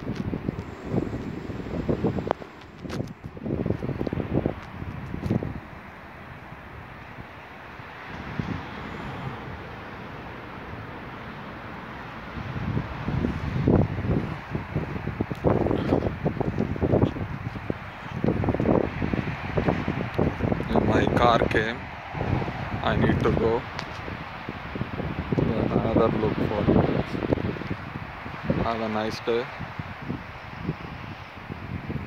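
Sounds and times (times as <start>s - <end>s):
city street traffic: 0.0s - 32.0s
wind buffeting microphone: 0.0s - 32.0s.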